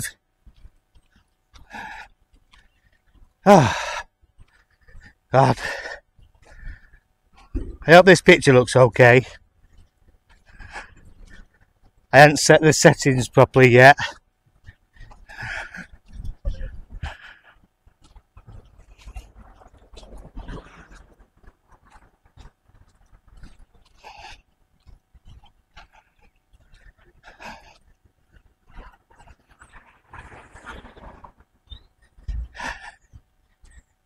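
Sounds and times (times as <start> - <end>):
person breathing heavily: 1.0 - 7.6, 9.2 - 11.9, 14.0 - 21.2, 21.8 - 30.3, 32.2 - 33.8
faint low rumble: 14.3 - 33.9.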